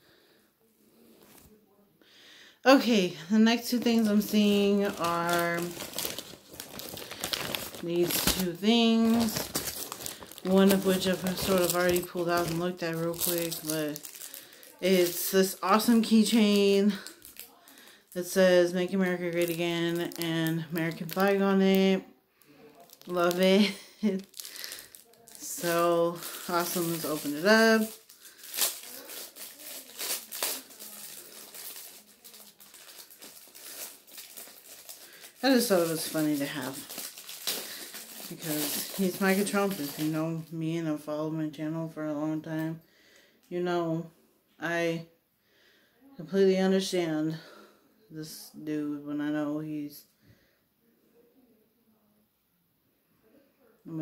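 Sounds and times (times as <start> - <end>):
plastic bags crinkling: 3.0 - 40.6.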